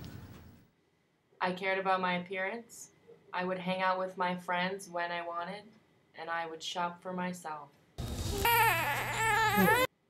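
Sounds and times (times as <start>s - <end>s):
baby crying: 8.3s - 9.9s.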